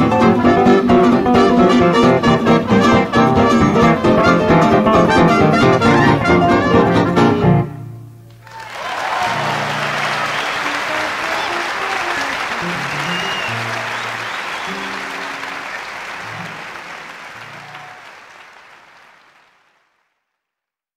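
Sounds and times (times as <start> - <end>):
audience applauding: 8.3 - 20.4.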